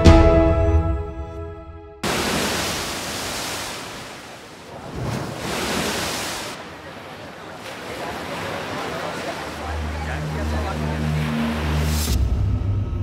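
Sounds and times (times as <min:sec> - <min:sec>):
sea surf breaking waves: 0:02.0 - 0:12.2.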